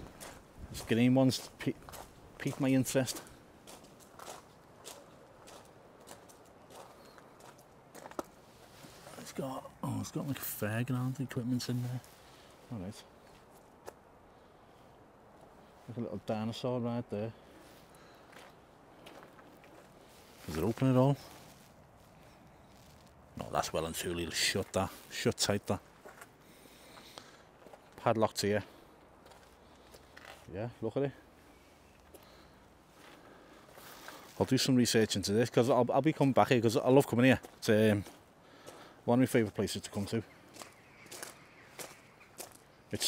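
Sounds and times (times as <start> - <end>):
footsteps on gravel: 0.0 - 10.5, 17.6 - 28.1, 28.7 - 30.5, 32.0 - 34.6, 37.3 - 43.0
faint outdoor hiss: 0.0 - 43.0.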